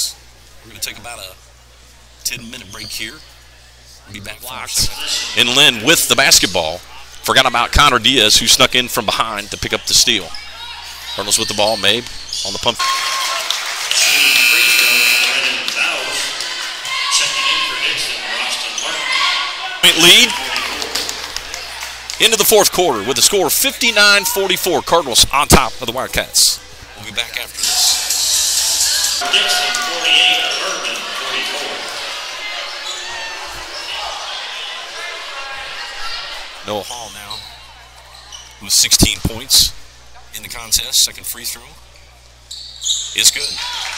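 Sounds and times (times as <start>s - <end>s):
crowd noise: 3.2s - 40.7s
scoreboard horn buzzing: 13.9s - 16.3s, 29.2s - 31.5s.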